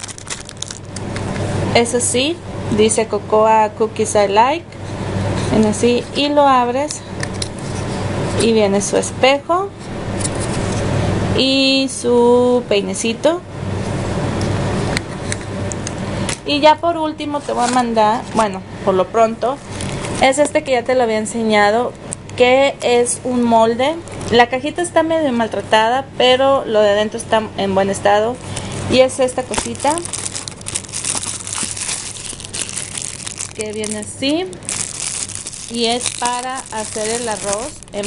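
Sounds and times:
plastic wrap crinkling: 0.0s - 1.1s, 28.4s - 38.0s.

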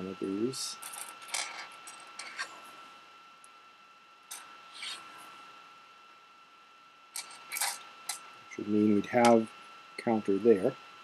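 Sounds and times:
pebbles scraping on paper: 4.7s - 5.2s.

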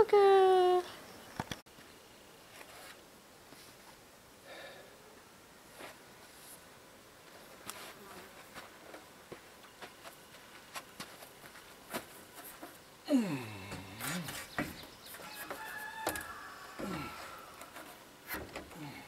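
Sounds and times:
loud falling voice-like cry: 16.6s - 17.6s.

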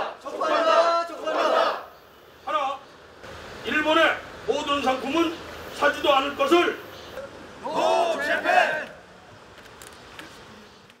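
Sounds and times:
group shouting a slogan: 0.0s - 2.0s, 7.6s - 9.0s
faint background noise: 0.0s - 11.0s.

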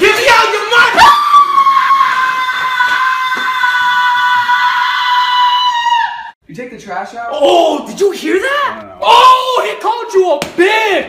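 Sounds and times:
high-pitched scream: 0.0s - 6.4s.

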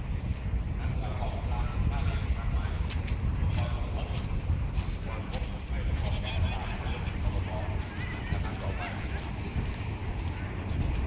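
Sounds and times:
low steady rumble: 0.0s - 11.0s
men talking and calling out: 0.6s - 11.0s.

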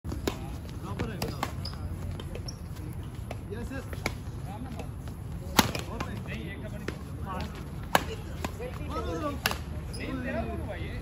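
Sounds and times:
rackets hitting shuttlecock: 0.1s - 2.4s, 3.2s - 9.8s
players' voices: 0.1s - 11.0s.

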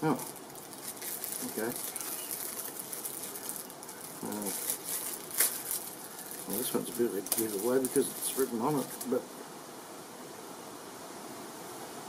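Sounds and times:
plastic package crinkling: 0.0s - 9.2s.

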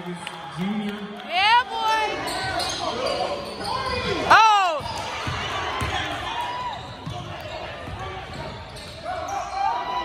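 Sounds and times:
basketball bouncing on hardwood floor: 4.8s - 6.0s.

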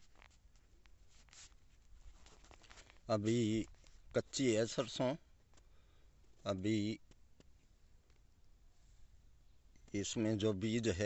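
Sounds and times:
hand rustling on phone: 0.0s - 4.2s.

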